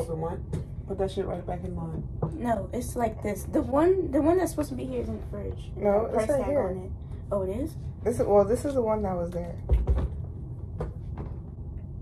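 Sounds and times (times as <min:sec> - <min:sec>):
low room hum: 0:00.0 - 0:12.0.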